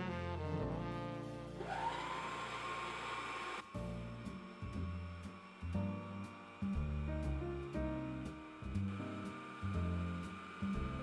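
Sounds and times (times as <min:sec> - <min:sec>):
background music: 0:00.0 - 0:02.6, 0:03.6 - 0:11.0
mixer motor whine: 0:01.6 - 0:11.0.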